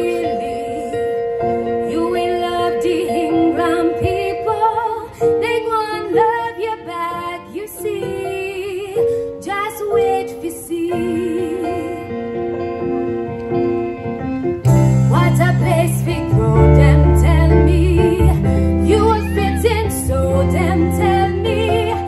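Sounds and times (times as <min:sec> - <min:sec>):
woman singing with vibrato: 0:00.0 - 0:01.2, 0:01.8 - 0:12.4, 0:15.1 - 0:22.0
live band: 0:12.0 - 0:22.0.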